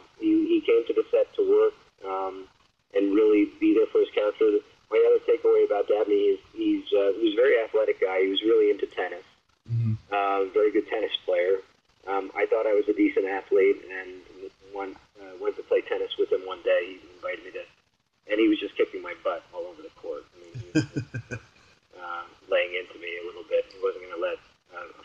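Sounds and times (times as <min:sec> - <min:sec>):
man talking: 0:00.0 - 0:17.6, 0:18.3 - 0:21.4, 0:22.0 - 0:25.0.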